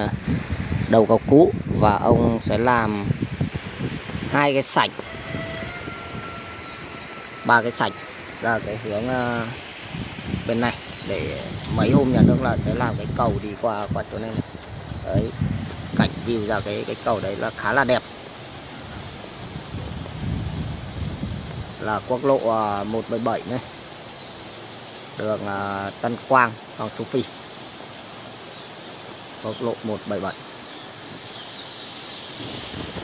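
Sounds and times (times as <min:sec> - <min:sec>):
wind buffeting microphone: 0:00.0 - 0:23.2, 0:32.4 - 0:33.0.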